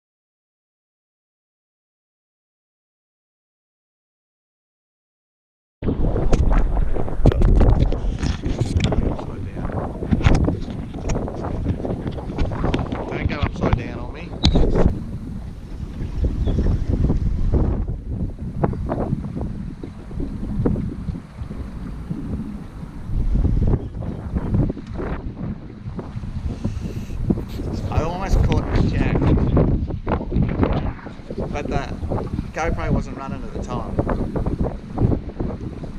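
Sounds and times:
wind buffeting microphone: 0:05.8 - 0:35.9.

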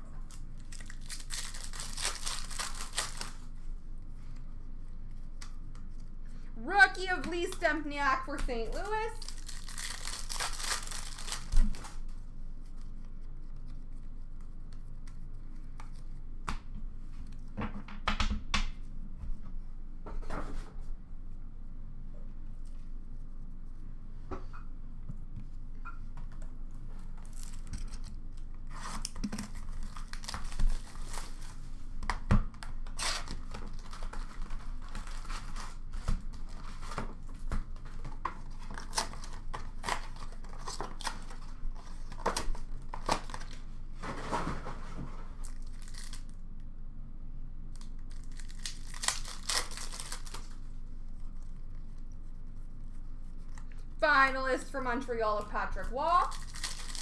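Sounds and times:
foil wrappers ripping and crinkling: 0:00.2 - 0:03.6, 0:08.6 - 0:12.1, 0:27.1 - 0:31.7, 0:32.8 - 0:43.6, 0:45.3 - 0:46.4, 0:47.8 - 0:52.0, 0:55.8 - 0:57.0.

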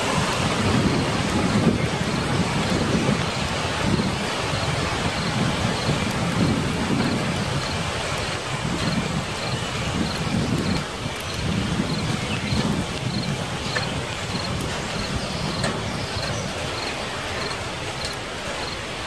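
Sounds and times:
low rolling thunder rumbles: 0:00.0 - 0:19.0
rain rushing: 0:00.0 - 0:19.0.

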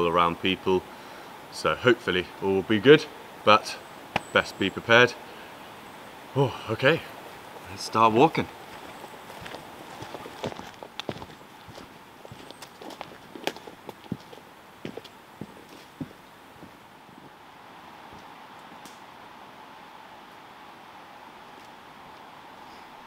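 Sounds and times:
faint steady hiss: 0:00.0 - 0:23.0
footsteps crunching on trail: 0:07.3 - 0:17.4.

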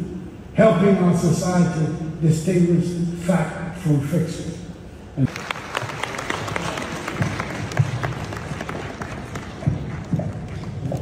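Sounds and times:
audience applauding: 0:05.3 - 0:11.0.

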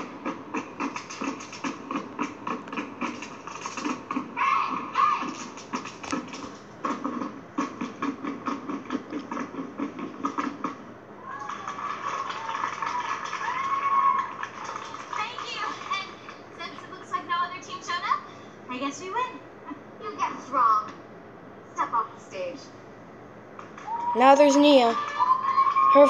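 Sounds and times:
people shouting: 0:04.4 - 0:05.4, 0:11.2 - 0:14.5, 0:23.8 - 0:26.0.

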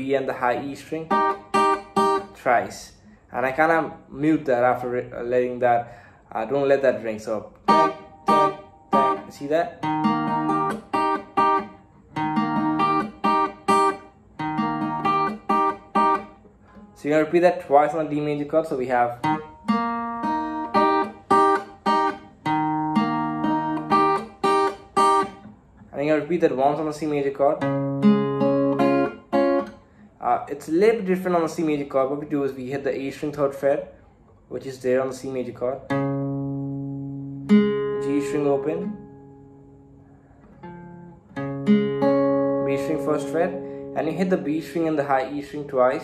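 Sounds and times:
acoustic guitar picked notes: 0:00.0 - 0:34.3, 0:34.9 - 0:46.0.

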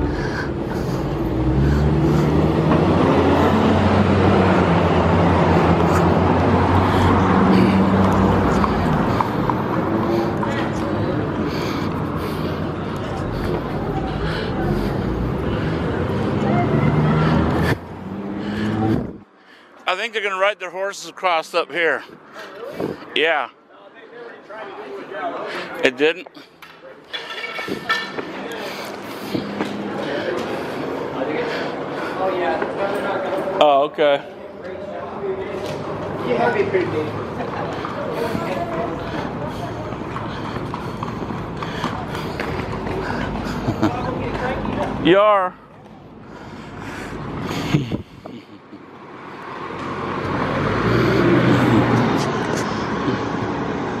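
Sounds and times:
motor vehicle passing: 0:00.0 - 0:19.8, 0:27.6 - 0:33.6, 0:34.2 - 0:54.0
city street traffic: 0:00.0 - 0:54.0
people's voices: 0:00.0 - 0:54.0.

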